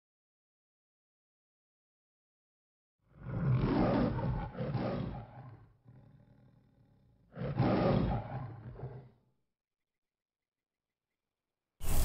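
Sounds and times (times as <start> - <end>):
lion roaring: 3.1 - 9.2
lion growl: 3.1 - 9.3.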